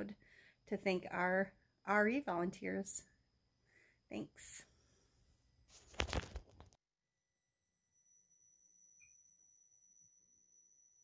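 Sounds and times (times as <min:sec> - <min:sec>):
rustling on microphone: 0:05.7 - 0:06.7
high-pitched electronic whine: 0:07.1 - 0:11.0.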